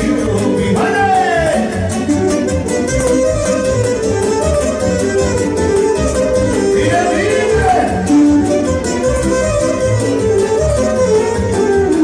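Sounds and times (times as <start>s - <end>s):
band playing dance music: 0.0s - 12.0s.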